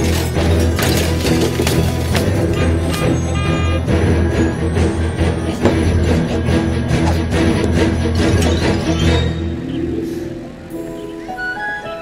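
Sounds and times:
soundtrack music: 0.0 - 12.0
bus horn honking: 2.1 - 7.8.

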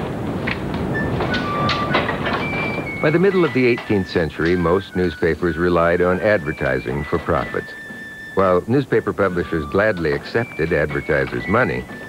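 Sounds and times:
printing press clattering: 0.0 - 12.0.

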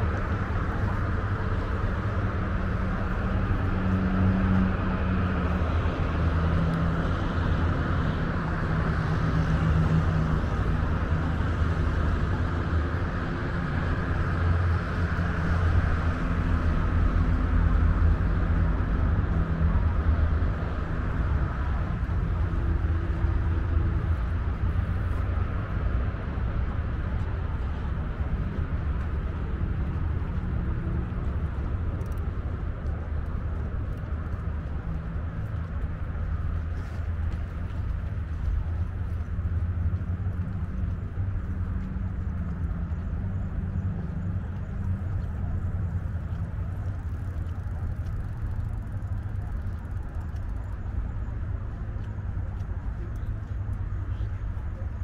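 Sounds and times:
distant road traffic rumble: 0.0 - 55.0.

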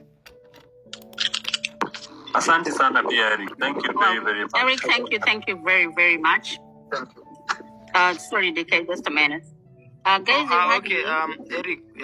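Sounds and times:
keyboard typing clicks: 0.3 - 1.8.

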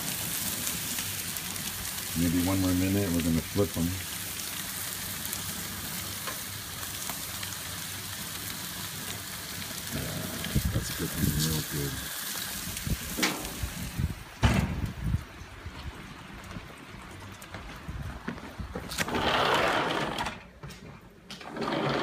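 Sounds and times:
food sizzling on a grill: 0.0 - 14.2.

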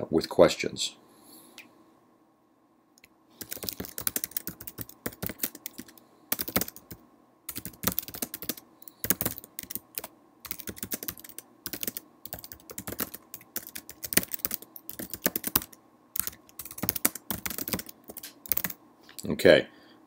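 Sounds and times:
keyboard typing: 3.4 - 18.8.

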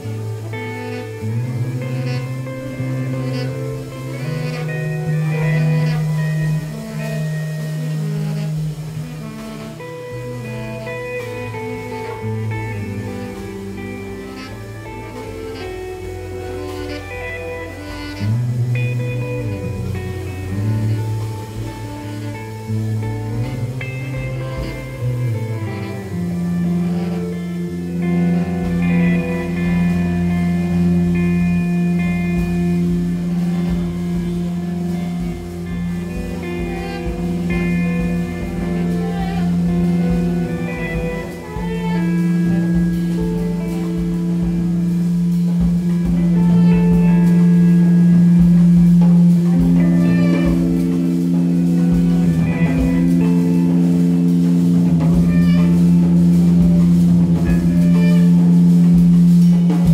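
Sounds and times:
higher sustained tones: 0.0 - 59.9
low drone note: 0.0 - 59.9.

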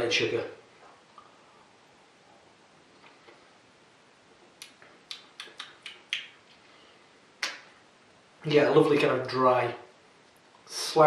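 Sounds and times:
mouth clicks and lip smacks: 4.4 - 6.7, 7.4 - 7.7.

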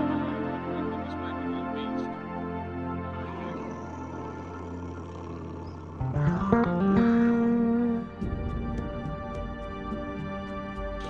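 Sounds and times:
low drone: 0.0 - 11.0
soft sustained synth pad: 0.0 - 11.0
effects-laden electric guitar: 6.0 - 10.9.

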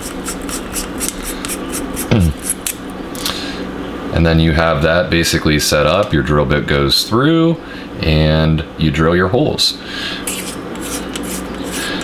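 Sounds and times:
parts scraping by hand: 0.0 - 3.4, 10.2 - 12.0.

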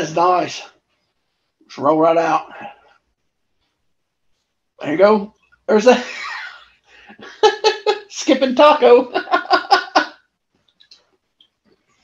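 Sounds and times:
man laughing: 5.9 - 10.2
person speaking: 7.2 - 10.2.

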